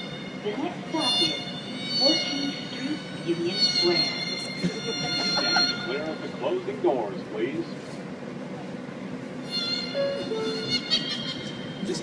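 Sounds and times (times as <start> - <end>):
two-note door chime: 0.0 - 6.4
train metallic squealing: 0.0 - 6.7, 9.4 - 12.0.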